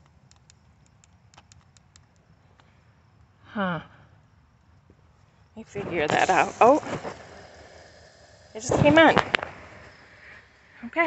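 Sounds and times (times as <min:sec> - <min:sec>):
faint small clicks: 0:00.0 - 0:02.8.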